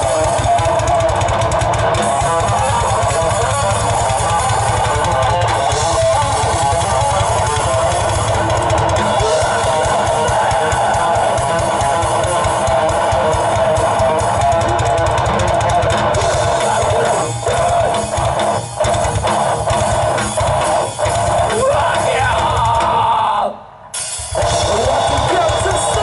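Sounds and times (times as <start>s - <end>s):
fast dense drumming: 0.0s - 23.4s, 24.1s - 26.0s
bass guitar: 0.0s - 26.0s
electric guitars: 0.0s - 26.0s.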